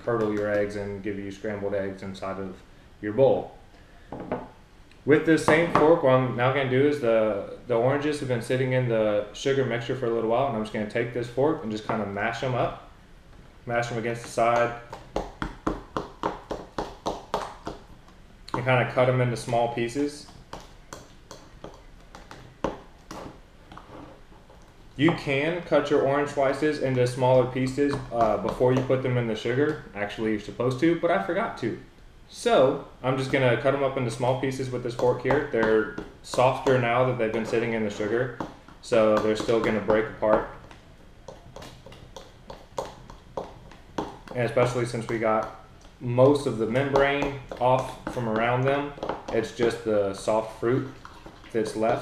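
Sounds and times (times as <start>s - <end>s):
fork mashing fruit in plastic bowl: 13.8s - 29.9s, 33.1s - 52.0s.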